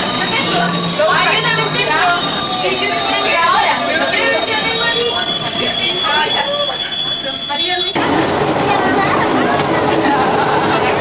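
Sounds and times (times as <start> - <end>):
passengers chatting: 0.0 - 11.0
train high-pitched whine: 0.0 - 11.0
train running noise: 0.0 - 11.0.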